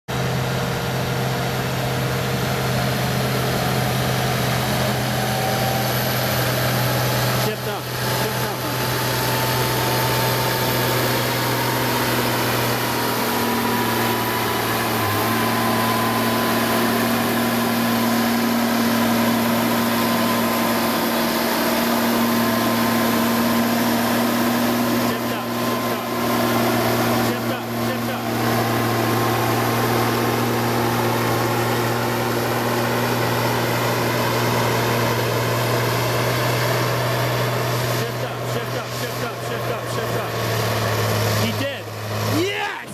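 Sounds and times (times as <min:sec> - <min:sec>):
tractor diesel engine under load: 0:00.1 - 0:42.9
high whine rising in pitch: 0:00.4 - 0:36.4.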